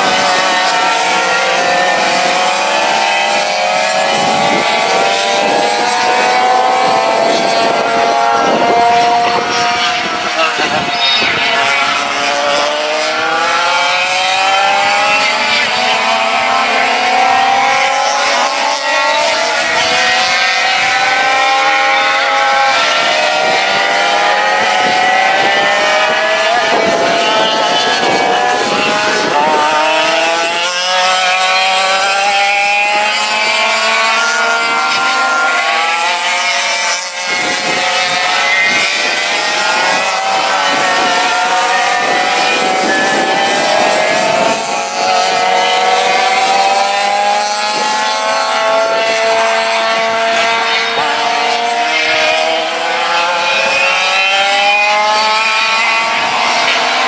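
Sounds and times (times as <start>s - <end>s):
kart engines racing: 0.0s - 57.0s.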